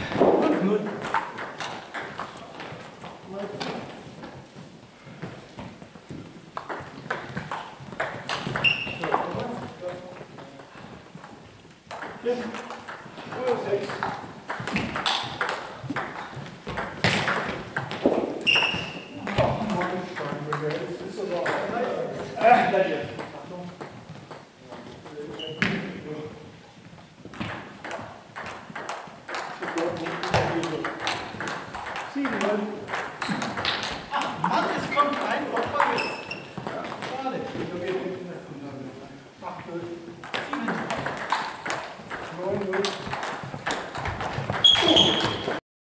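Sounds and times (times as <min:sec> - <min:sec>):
table tennis balls clicking: 0:00.0 - 0:25.8, 0:27.2 - 0:38.1, 0:40.2 - 0:45.6
people talking: 0:00.2 - 0:01.0, 0:03.3 - 0:03.9, 0:09.0 - 0:10.7, 0:12.2 - 0:14.1, 0:19.2 - 0:23.8, 0:24.6 - 0:26.4, 0:29.6 - 0:31.1, 0:32.1 - 0:32.9, 0:34.1 - 0:41.2, 0:42.2 - 0:43.1.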